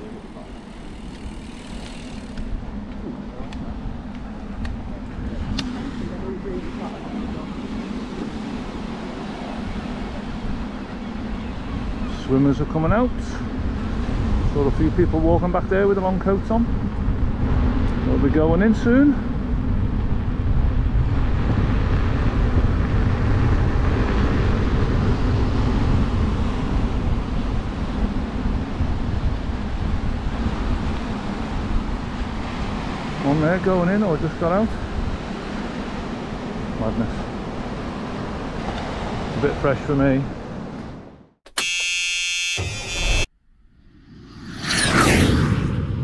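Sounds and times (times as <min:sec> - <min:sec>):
wind rushing over microphone: 0:00.0 - 0:41.4, 0:43.6 - 0:46.0
bright electronic buzz: 0:41.5 - 0:45.1.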